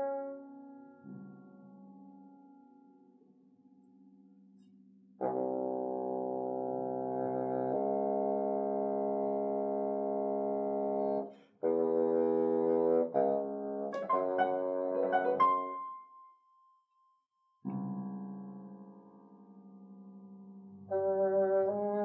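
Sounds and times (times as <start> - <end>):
piano notes: 0.0 - 4.0, 5.2 - 16.3, 17.6 - 22.0
bassoon playing: 5.2 - 16.0, 20.9 - 22.0.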